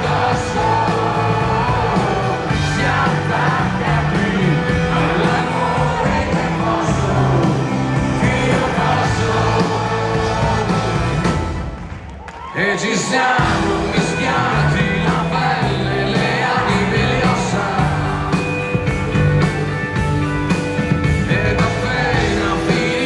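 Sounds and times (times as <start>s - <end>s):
person singing: 0.0s - 11.4s, 12.5s - 18.8s, 21.2s - 23.0s
electric guitars: 0.0s - 23.0s
live rock band: 0.0s - 23.0s
audience shouts and whoops: 10.2s - 14.6s.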